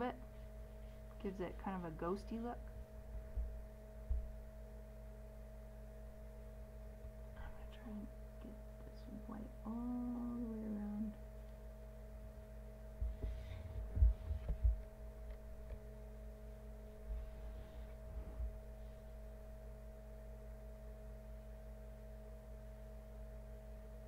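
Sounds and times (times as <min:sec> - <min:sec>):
electrical hum: 0:00.0 - 0:24.0
low thumps: 0:02.6 - 0:04.5, 0:12.9 - 0:15.8.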